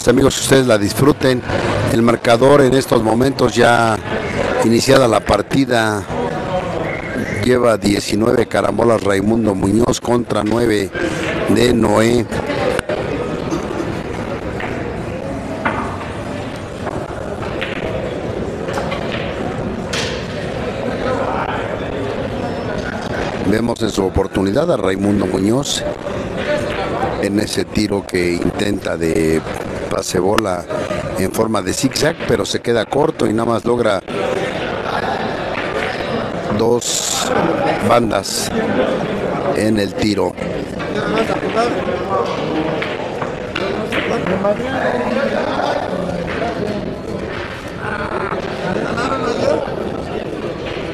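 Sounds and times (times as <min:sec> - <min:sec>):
people talking: 0:00.0 - 0:14.1, 0:20.8 - 0:50.9
chatter of many voices: 0:00.0 - 0:50.9
billiard balls clicking: 0:15.6 - 0:20.2.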